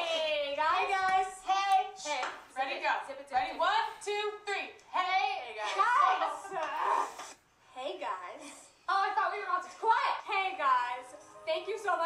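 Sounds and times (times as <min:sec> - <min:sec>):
women talking: 0:00.0 - 0:06.9.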